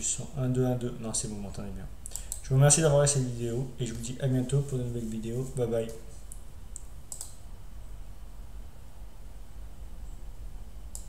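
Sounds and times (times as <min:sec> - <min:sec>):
low steady hum: 0:00.0 - 0:11.0
computer clicks: 0:02.0 - 0:02.5, 0:05.9 - 0:07.4.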